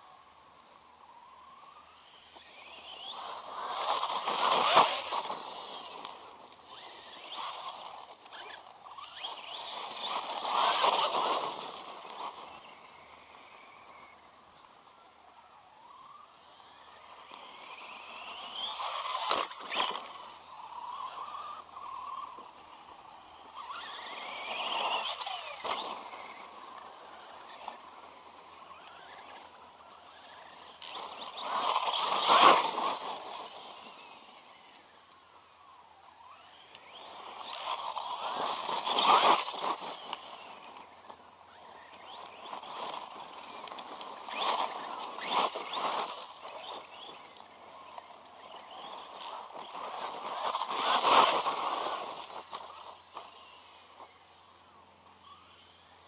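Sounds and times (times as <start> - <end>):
toy truck electric motor whining: 1.2 - 14.6, 15.3 - 56.0.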